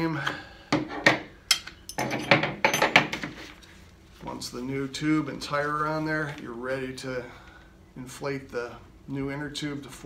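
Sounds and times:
metallic clinks and knocks: 1.5s - 3.1s.

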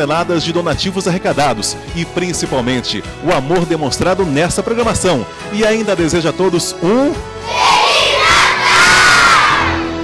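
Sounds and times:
music: 0.0s - 10.0s
children cheering: 7.5s - 9.9s.

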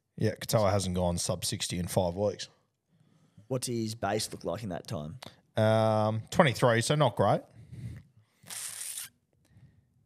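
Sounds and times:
short hiss of noise: 8.4s - 9.1s.

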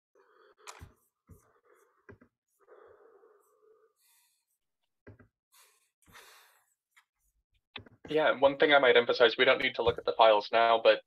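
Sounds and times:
faint breaths: 0.2s - 4.8s, 5.5s - 7.4s.

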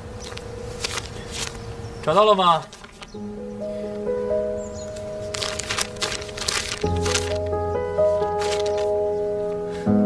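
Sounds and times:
soft background music: 0.0s - 10.0s
notebook pages flipping: 0.2s - 1.6s, 2.6s - 3.2s, 4.9s - 7.5s, 8.1s - 9.0s.

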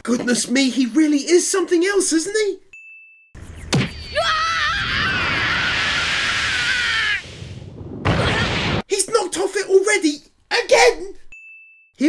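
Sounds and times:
long wavering scream: 3.9s - 7.6s.

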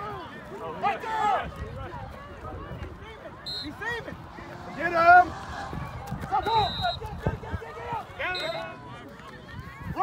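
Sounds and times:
people shouting outdoors: 0.0s - 1.5s.

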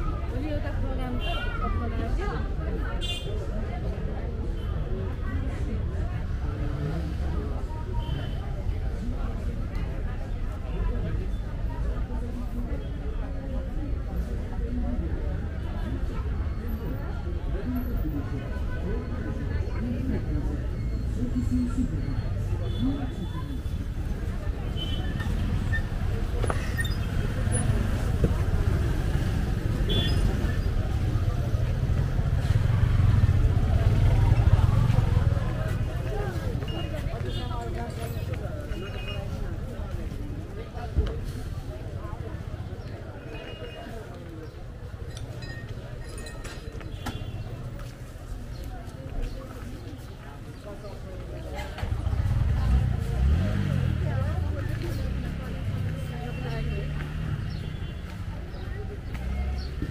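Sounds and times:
people talking: 0.0s - 59.9s
street traffic: 0.0s - 59.9s
motor vehicle rumble: 3.5s - 59.9s.

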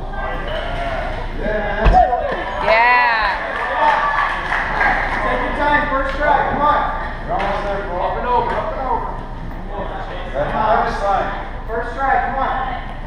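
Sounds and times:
people talking and calling out: 0.0s - 13.0s.

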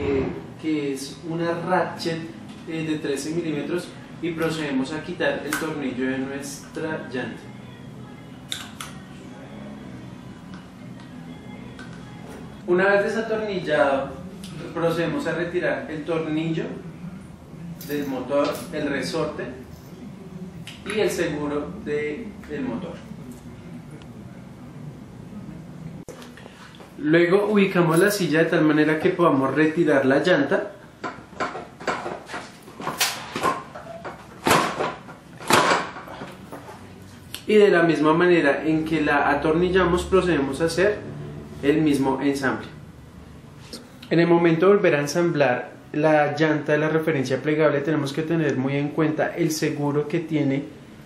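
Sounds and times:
soft background music: 0.0s - 51.0s.

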